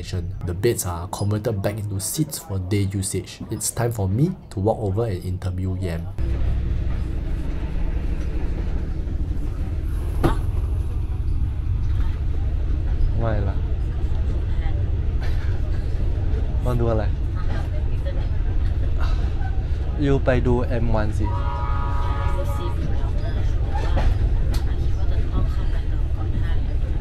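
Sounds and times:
train rumble inside carriage: 0:06.1 - 0:27.0.

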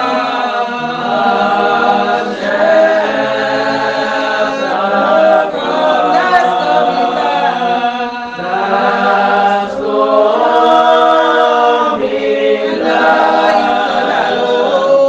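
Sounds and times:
congregation singing a hymn: 0:00.0 - 0:15.0.

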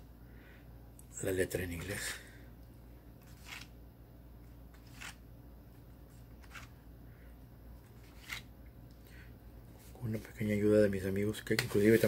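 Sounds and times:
paper rustling: 0:03.2 - 0:03.7, 0:04.7 - 0:05.2, 0:06.2 - 0:06.8, 0:07.8 - 0:08.5.

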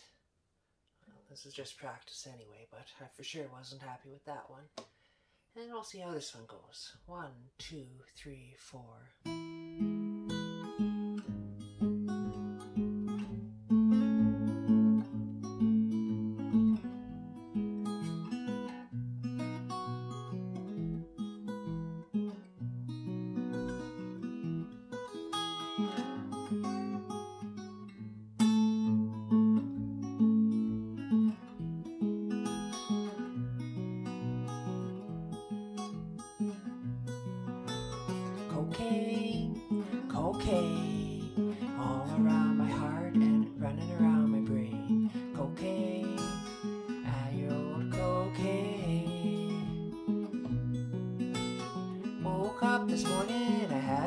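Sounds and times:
acoustic guitar blues: 0:09.2 - 0:54.0.

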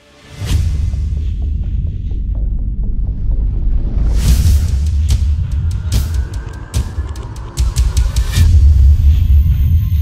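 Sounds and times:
deep bass drone: 0:00.5 - 0:10.0.

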